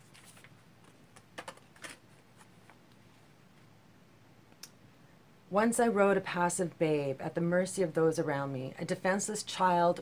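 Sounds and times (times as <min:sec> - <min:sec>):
cards clicking and tapping: 0:00.8 - 0:02.0.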